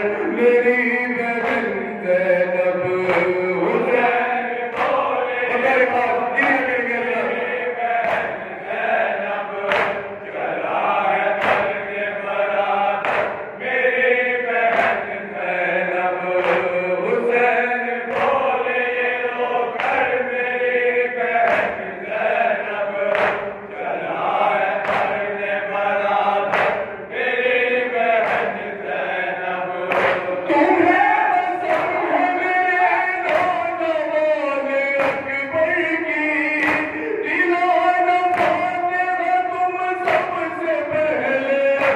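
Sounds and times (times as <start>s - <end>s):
men chanting in unison: 0.0s - 41.9s.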